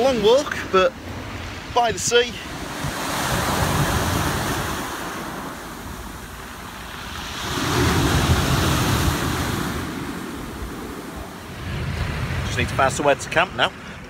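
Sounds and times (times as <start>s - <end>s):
wind rumbling on microphone: 0.0s - 14.0s.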